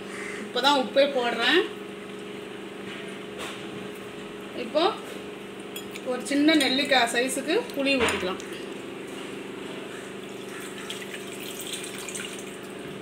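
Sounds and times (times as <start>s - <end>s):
kitchen hum: 0.0s - 13.0s
woman speaking: 0.5s - 1.8s, 4.6s - 5.0s, 6.0s - 8.4s
utensils clinking on metal pot: 5.8s - 7.1s.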